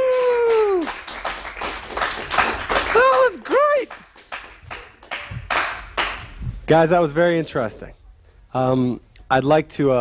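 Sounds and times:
hand clapping: 0:00.0 - 0:06.4.

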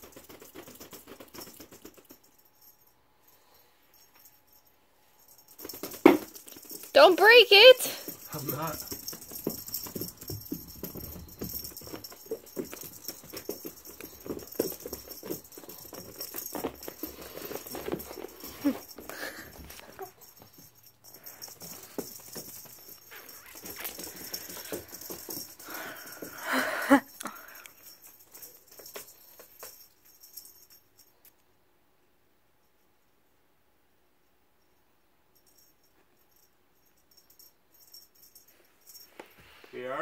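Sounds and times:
cat playing with toy on carpet: 0:00.0 - 0:26.6, 0:27.2 - 0:31.3.

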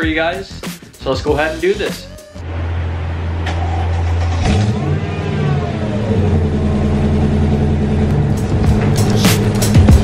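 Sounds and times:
car engine idling: 0:02.4 - 0:10.0.

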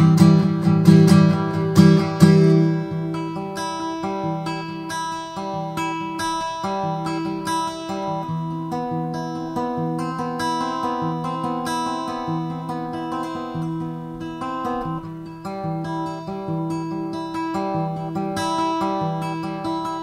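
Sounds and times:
plucked guitar notes: 0:00.0 - 0:20.0.

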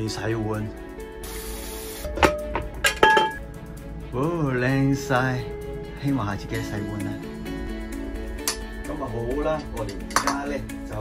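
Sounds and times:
background music: 0:00.0 - 0:11.0
short hiss: 0:01.2 - 0:02.1
steel pots clanking: 0:02.1 - 0:03.4, 0:09.5 - 0:10.6.

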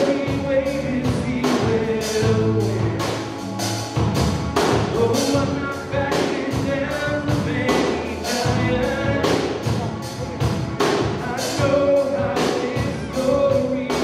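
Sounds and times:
bass guitar: 0:00.0 - 0:14.0
drum kit steady beat: 0:00.0 - 0:14.0
electric guitar: 0:00.0 - 0:14.0.

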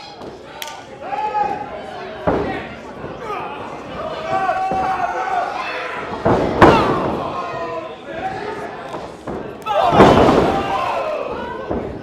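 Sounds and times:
heavy impacts in wrestling ring: 0:06.0 - 0:07.6, 0:09.1 - 0:12.0.

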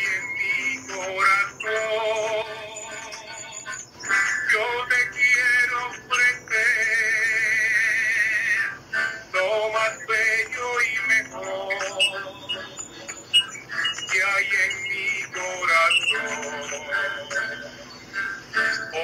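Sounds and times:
man singing a hymn: 0:00.0 - 0:12.8, 0:13.8 - 0:17.8, 0:18.6 - 0:19.0
acoustic guitar: 0:00.0 - 0:19.0.

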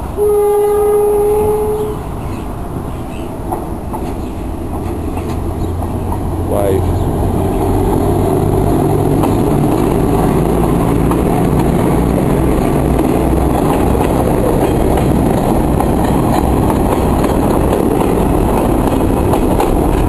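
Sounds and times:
diesel locomotive engine rumbling: 0:00.0 - 0:20.0.

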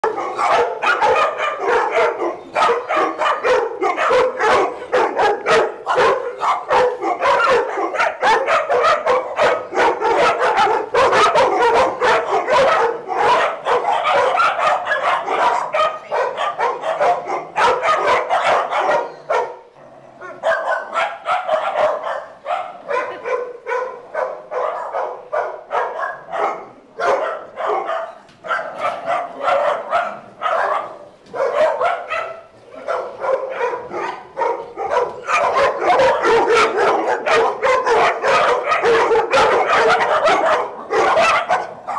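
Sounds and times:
dogs barking: 0:00.0 - 0:41.9.

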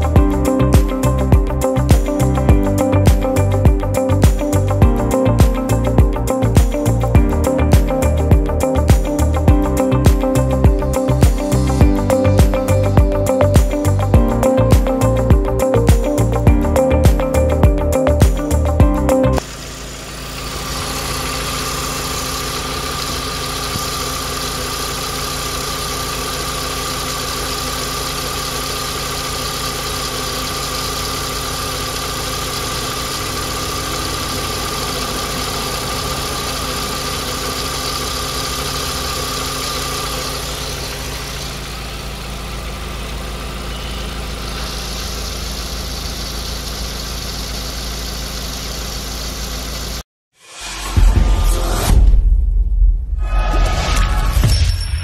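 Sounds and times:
car engine idling: 0:00.0 - 0:50.0.

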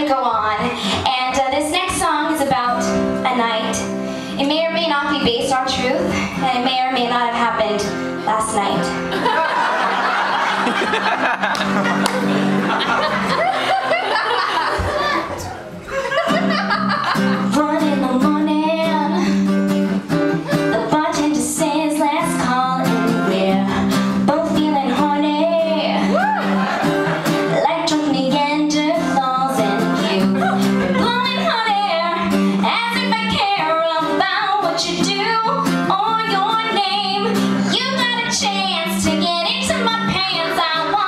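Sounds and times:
woman singing: 0:00.0 - 0:09.0, 0:17.2 - 0:26.5, 0:27.4 - 0:41.0
acoustic guitar chords: 0:00.0 - 0:41.0.

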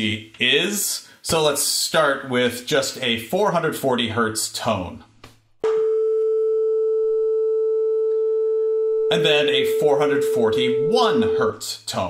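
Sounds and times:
steady sine tone: 0:05.7 - 0:11.6.

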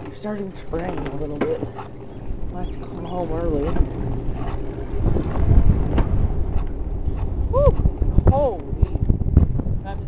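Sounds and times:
bicycle rolling over concrete: 0:00.0 - 0:10.0
wind buffeting microphone: 0:00.0 - 0:10.0.

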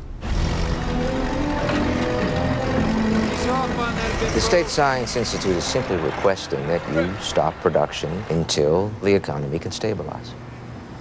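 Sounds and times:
heavy machine engine rumbling: 0:00.0 - 0:11.0.

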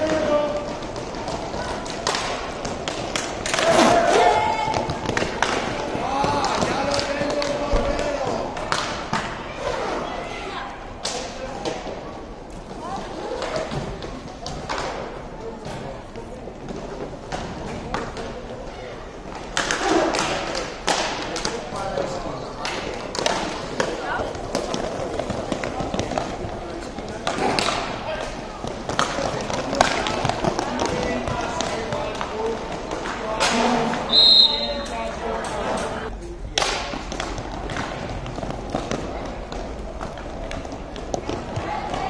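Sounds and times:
hockey sticks clacking: 0:00.0 - 0:10.0, 0:10.9 - 0:42.0.

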